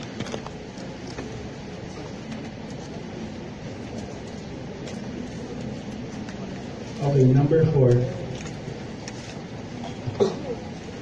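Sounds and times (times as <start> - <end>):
room rumble and hiss: 0.0 - 11.0.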